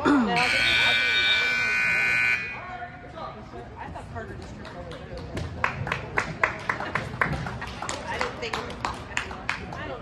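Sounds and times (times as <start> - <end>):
arena scoreboard buzzer: 0.4 - 2.8.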